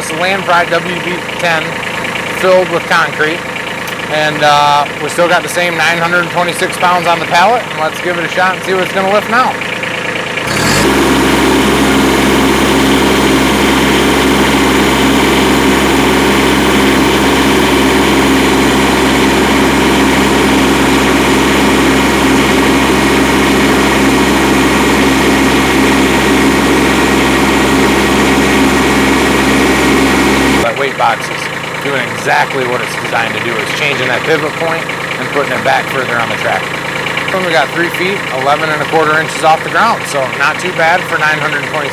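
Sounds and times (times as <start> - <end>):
tractor diesel engine revving: 0.0 - 41.9.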